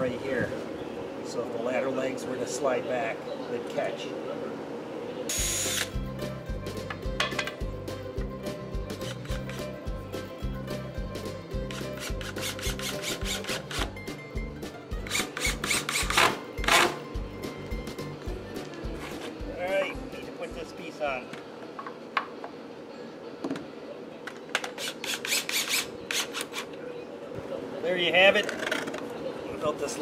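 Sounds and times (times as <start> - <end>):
cordless drill driving screws: 5.3 - 6.0, 11.7 - 13.9, 15.0 - 17.0, 24.6 - 26.7
background music with steady beat: 5.3 - 23.8.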